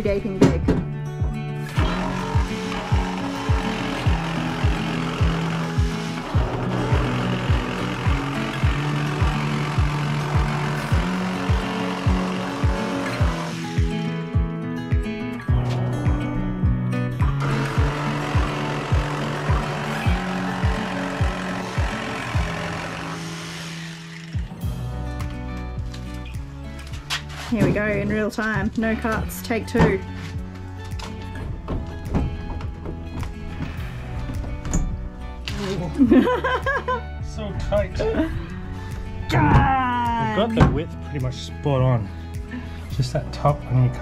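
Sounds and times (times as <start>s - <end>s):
background music with steady beat: 0.0s - 23.1s, 24.4s - 44.0s
jigsaw cutting sheet metal: 1.7s - 14.2s, 17.2s - 24.6s.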